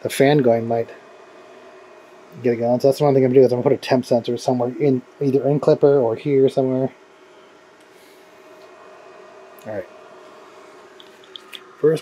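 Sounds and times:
three d printer humming: 0.0s - 12.0s.

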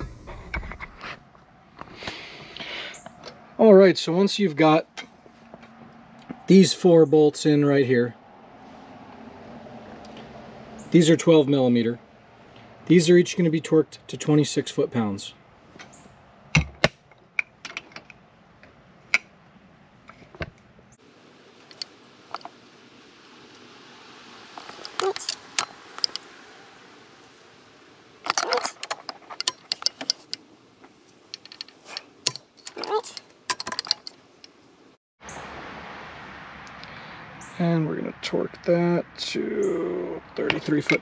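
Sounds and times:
steady hiss: 21.0s - 32.6s
ratcheting torque wrench clicking: 28.3s - 30.4s, 31.3s - 34.2s.

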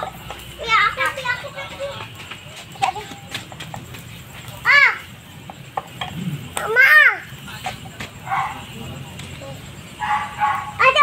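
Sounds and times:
children calling out: 0.0s - 3.4s, 4.5s - 5.2s, 6.5s - 7.4s, 10.0s - 11.0s.

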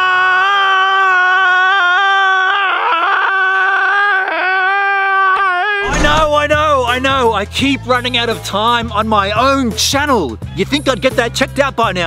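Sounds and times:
man's high-pitched wail: 0.0s - 6.0s.

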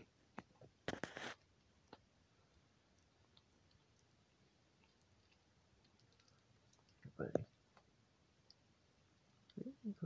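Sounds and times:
animal chewing hard pellets: 0.8s - 9.6s.

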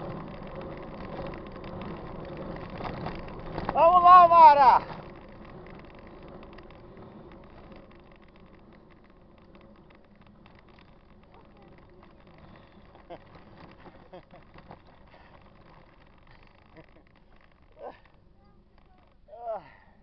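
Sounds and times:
bike tyres rolling and rattling: 0.0s - 20.0s.

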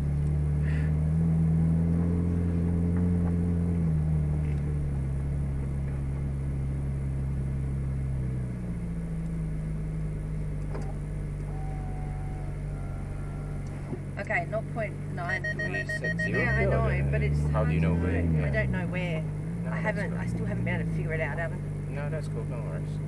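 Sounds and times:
car engine idling from inside: 0.0s - 23.0s.

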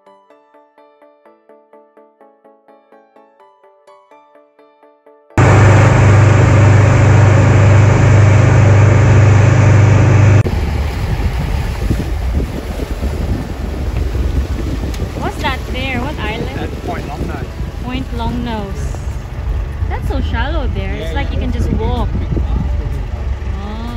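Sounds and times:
motorboat engine drone: 5.4s - 11.9s, 13.5s - 23.9s
water noise: 5.4s - 23.8s
wind buffeting microphone: 5.4s - 23.9s.

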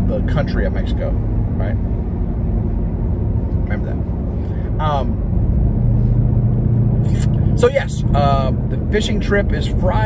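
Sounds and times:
low engine drone: 0.0s - 10.0s
road rumble inside car: 0.0s - 10.0s.

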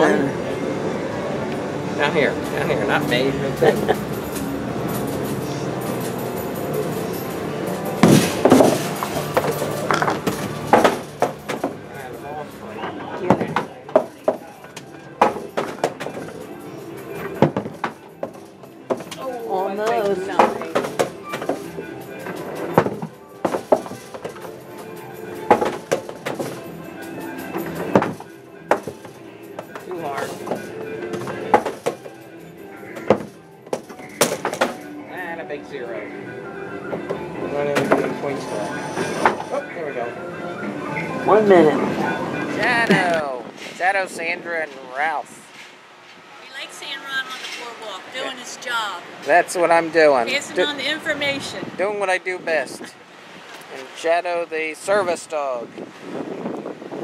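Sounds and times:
voices: 0.0s - 24.0s, 35.0s - 45.6s, 46.3s - 53.0s.

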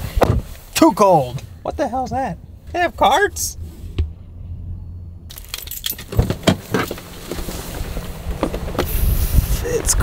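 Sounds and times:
handling clicks and rustling: 5.3s - 8.9s.

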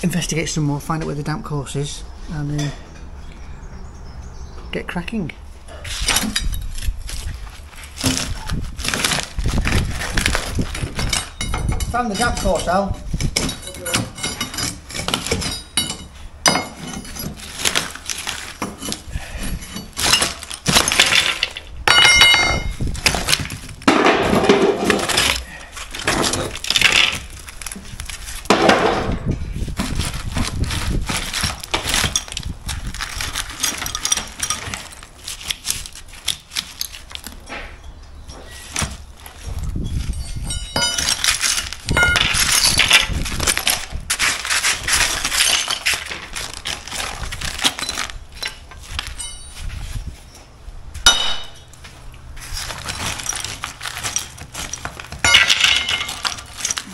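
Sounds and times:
knocks and scrapes of brick rubble: 5.7s - 56.9s.

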